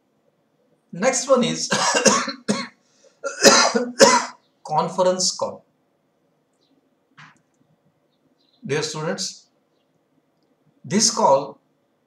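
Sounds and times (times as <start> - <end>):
man coughing: 1.7 - 4.4.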